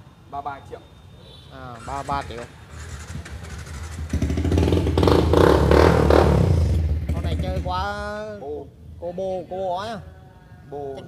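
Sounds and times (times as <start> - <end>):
motorcycle engine revving: 1.7 - 8.0.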